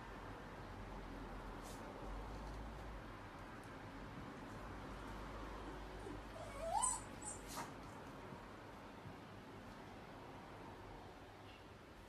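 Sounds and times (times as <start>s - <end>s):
dog whining: 6.0s - 7.8s.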